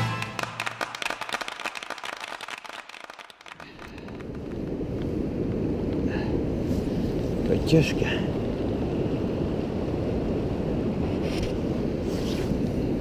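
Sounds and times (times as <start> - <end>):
wind on microphone: 3.6 - 13.0.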